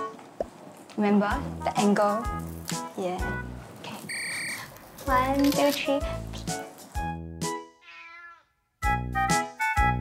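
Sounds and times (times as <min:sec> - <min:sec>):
faint cat meow: 0:07.8 - 0:08.7
backing music: 0:08.8 - 0:10.0.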